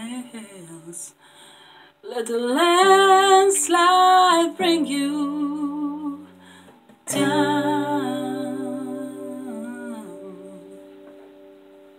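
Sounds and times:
woman singing long note: 7.1 - 11.0
acoustic guitar chord ringing: 7.1 - 11.9.

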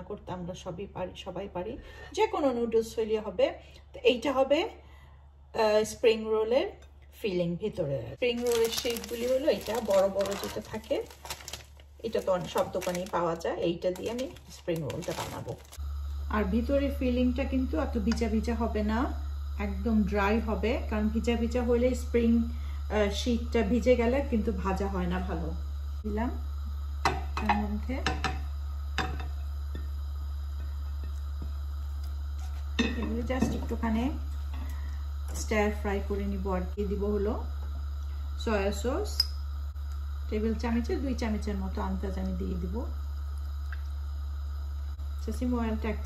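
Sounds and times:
woman talking: 0.0 - 4.8, 5.6 - 11.3, 12.0 - 26.4, 27.4 - 28.1, 32.8 - 34.3, 35.3 - 37.5, 38.4 - 39.2, 40.3 - 42.9, 45.2 - 46.0
steady low hum: 0.0 - 46.0
plastic packet crinkling: 8.2 - 15.8.

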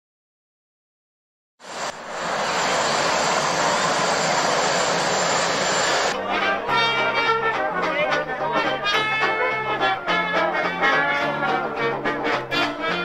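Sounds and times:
steady roar of outdoor noise: 1.6 - 6.2
brass band playing: 6.1 - 13.0.

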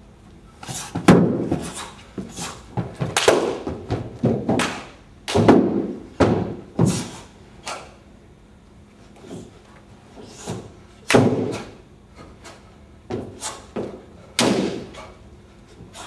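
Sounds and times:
feet stamping on padded floor: 0.6 - 7.2
hand slaps: 3.1 - 3.6, 4.5 - 5.6.

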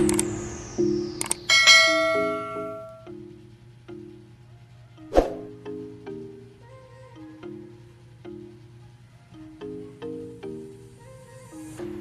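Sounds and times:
clicks: 0.0 - 0.3, 1.2 - 1.5
background music: 0.0 - 12.0
bell chiming: 1.5 - 3.1
falling swish: 5.1 - 5.5.

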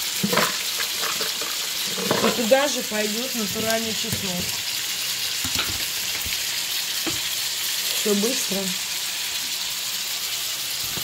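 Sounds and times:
vegetables sizzling in oil: 0.0 - 11.0.

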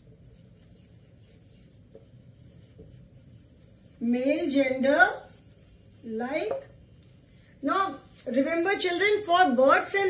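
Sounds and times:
marker pen writing on whiteboard: 0.0 - 6.8.

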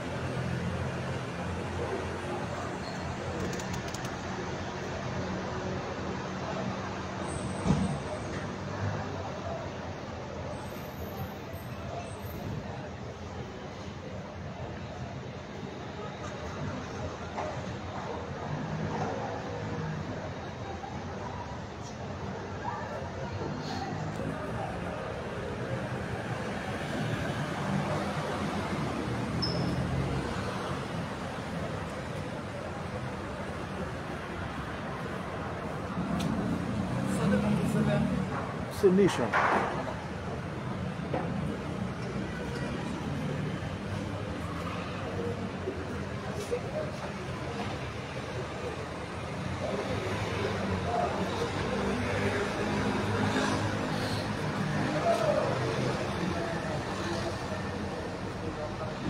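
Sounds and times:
street traffic noise: 0.0 - 59.0
brief high squeak: 29.4 - 30.0.

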